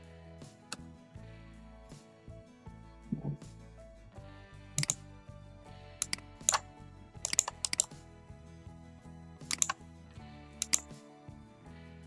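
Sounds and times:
background music: 0:00.0 - 0:12.0
sharp computer clicks: 0:04.8 - 0:05.0, 0:06.0 - 0:08.0, 0:09.5 - 0:09.8, 0:10.6 - 0:11.0.

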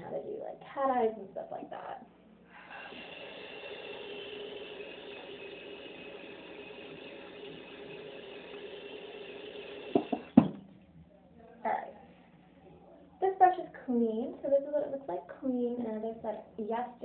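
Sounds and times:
small electric motor whirring: 0:02.6 - 0:10.4
sharp knocks: 0:10.0 - 0:10.7.

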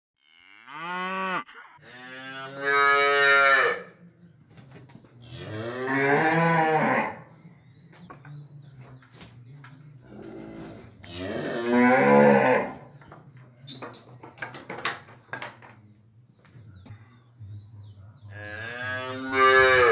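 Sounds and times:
cow mooing: 0:00.2 - 0:03.9, 0:05.3 - 0:07.2, 0:10.1 - 0:12.9, 0:18.3 - 0:19.9.

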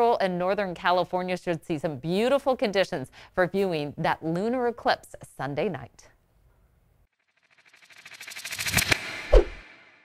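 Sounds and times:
rising fluttering whoosh: 0:07.3 - 0:10.0.

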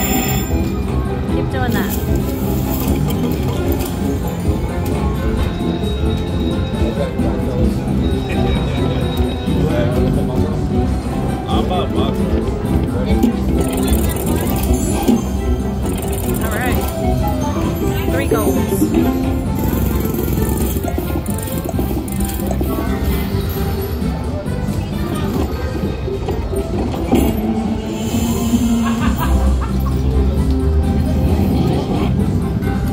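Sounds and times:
slot machine bonus music: 0:00.0 - 0:25.8.

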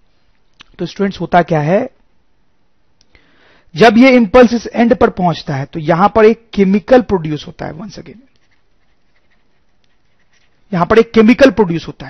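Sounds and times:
faint background hiss: 0:00.0 - 0:12.0
man speaking: 0:00.7 - 0:02.0, 0:03.7 - 0:08.3, 0:10.7 - 0:12.0.

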